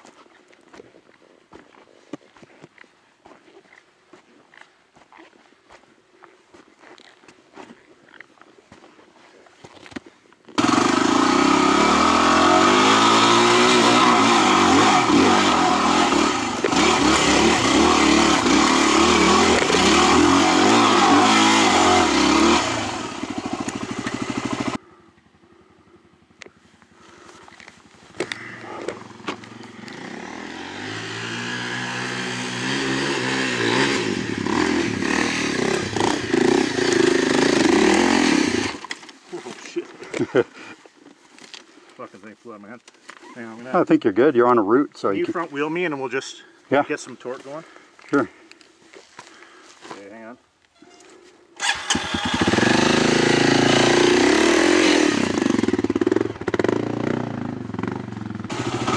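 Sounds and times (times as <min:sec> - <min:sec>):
motorcycle engine revving: 0:10.6 - 0:25.0, 0:26.1 - 0:39.0, 0:51.6 - 0:58.9.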